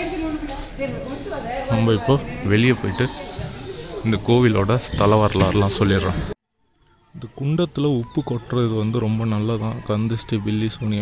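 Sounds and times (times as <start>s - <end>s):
man talking: 3.9s - 6.4s.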